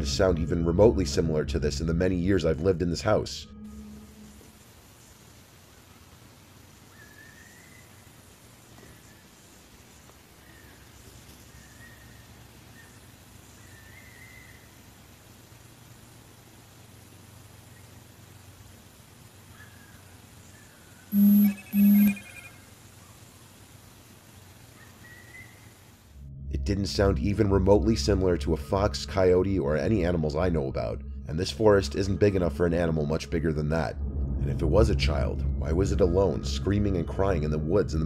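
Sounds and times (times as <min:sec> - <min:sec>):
short beeps: 0:21.1 - 0:22.5.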